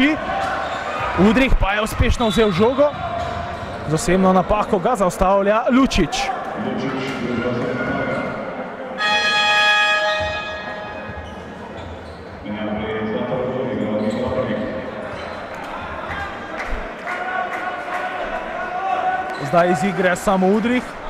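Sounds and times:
arena horn: 0:09.0 - 0:11.2.

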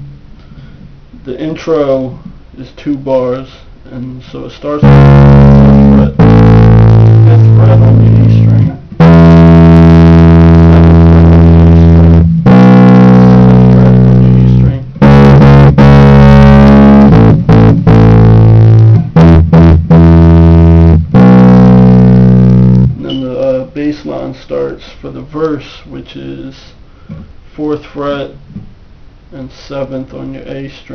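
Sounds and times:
electric bass guitar bassline: 0:00.0 - 0:00.2, 0:04.8 - 0:23.2.

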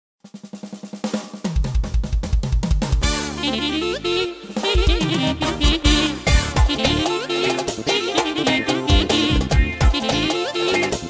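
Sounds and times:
drum roll: 0:00.2 - 0:11.0
bass drum and bass line beat: 0:01.6 - 0:11.0.

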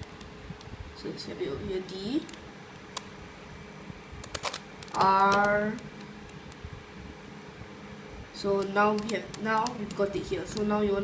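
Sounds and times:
fans whirring: 0:00.0 - 0:11.0.

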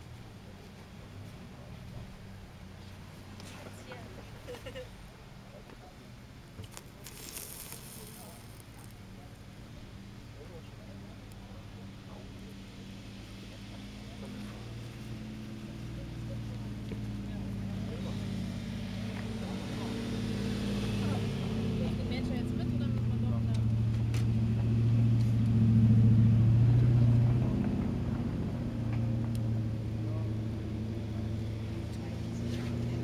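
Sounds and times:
vehicle engine humming: 0:00.0 - 0:33.0.

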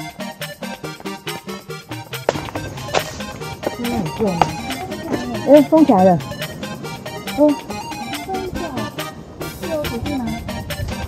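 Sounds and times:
background music: 0:00.0 - 0:11.0
sharp knocks: 0:02.1 - 0:05.3.

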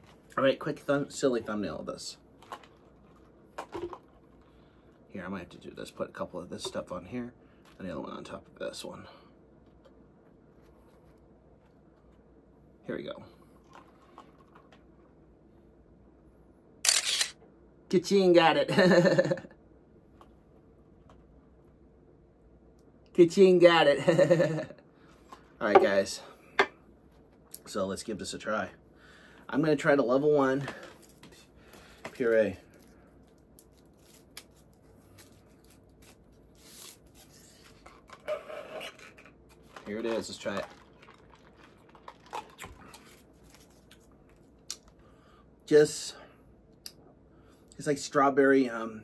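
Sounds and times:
camera shutter: 0:16.8 - 0:17.4
paper wrapper tearing: 0:33.6 - 0:37.8
straw squeaking in cup lid: 0:38.2 - 0:39.4.

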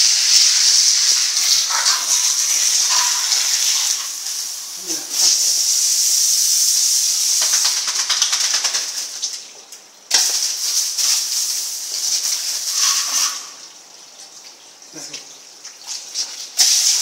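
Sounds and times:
water spraying from hose on concrete: 0:00.0 - 0:17.0.

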